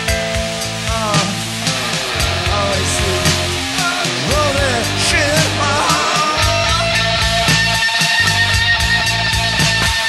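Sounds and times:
instrumental rock music: 0:00.0 - 0:10.0.

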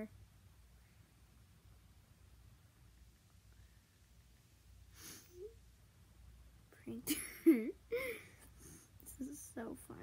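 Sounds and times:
girl giggling quietly: 0:04.9 - 0:05.6, 0:07.0 - 0:09.3.

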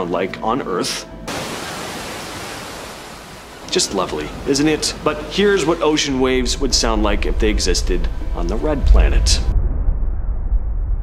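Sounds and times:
ocean surf: 0:01.3 - 0:09.0.

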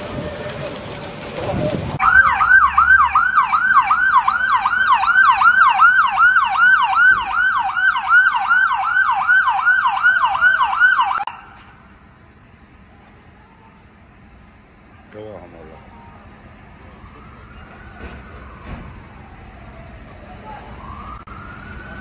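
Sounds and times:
fire engine siren yelping: 0:02.0 - 0:11.9, 0:14.6 - 0:22.0.

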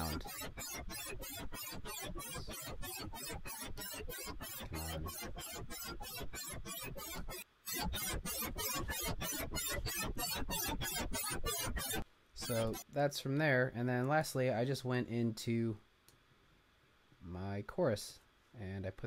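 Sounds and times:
rapid electronic synth pulses: 0:00.0 - 0:12.8.

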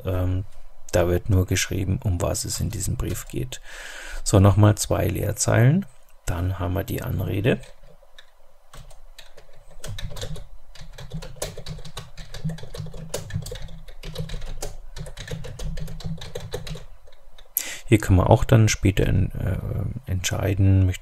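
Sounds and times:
typing on computer keyboard: 0:07.6 - 0:17.2.

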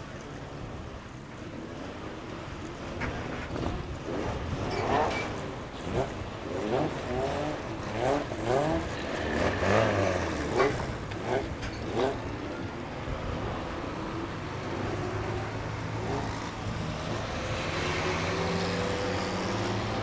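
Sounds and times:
stock car engines revving: 0:01.6 - 0:20.0.

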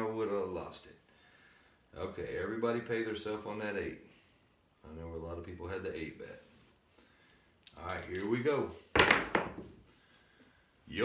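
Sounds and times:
dice knocking on felt table: 0:09.0 - 0:09.8.

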